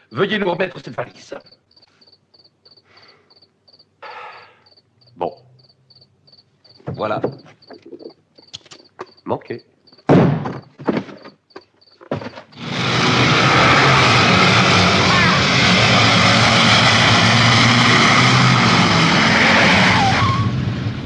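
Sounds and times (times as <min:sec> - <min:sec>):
sharp knocks and thuds: 0:06.7 - 0:09.2, 0:09.9 - 0:12.6
military vehicle engine running: 0:12.5 - 0:21.0.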